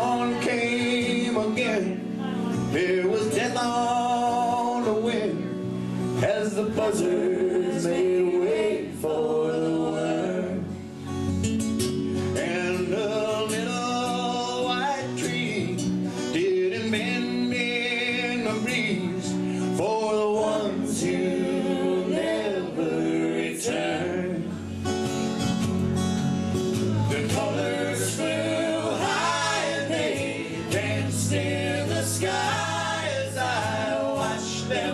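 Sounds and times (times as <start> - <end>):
acoustic guitars: 0.0 - 34.9
electric bass guitar: 18.2 - 34.9.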